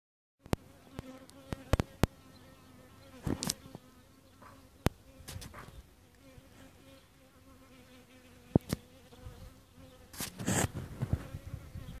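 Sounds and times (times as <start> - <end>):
flying insect buzzing: 0.4 - 12.0.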